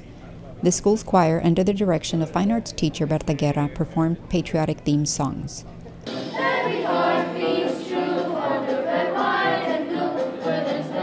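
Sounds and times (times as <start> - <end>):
children's choir singing: 6.1 - 11.0.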